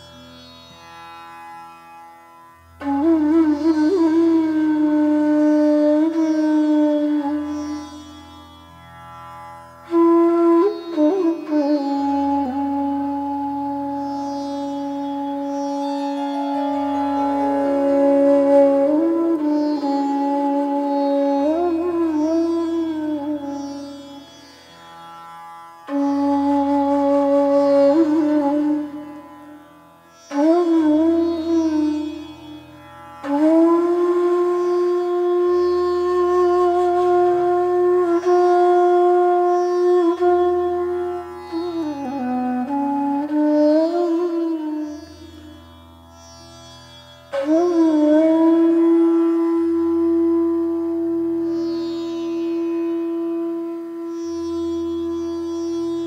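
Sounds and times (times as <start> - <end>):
bamboo flute playing slow phrases: 2.8 - 8.2, 9.8 - 24.2, 25.8 - 29.6, 30.3 - 45.8, 47.3 - 56.0.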